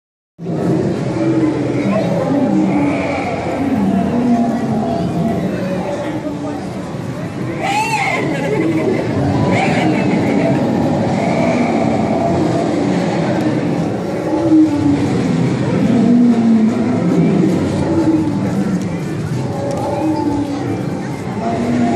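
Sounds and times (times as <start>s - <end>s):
people talking in a large hall: 0.4s - 21.9s
steady background rumble: 0.4s - 21.9s.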